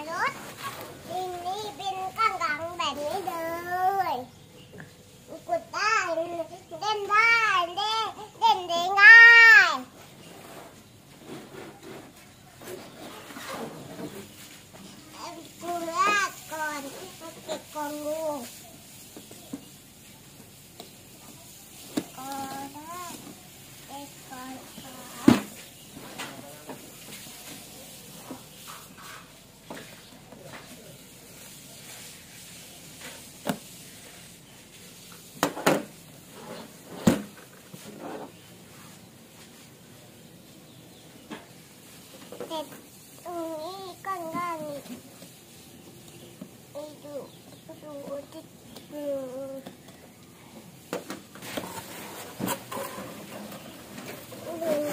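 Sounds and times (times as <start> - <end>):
faint child's voice: 0.0 - 9.9, 15.1 - 18.8, 22.1 - 23.3, 42.3 - 45.0, 46.7 - 49.8, 54.4 - 54.9
cardboard box rustling and scraping: 51.3 - 54.9.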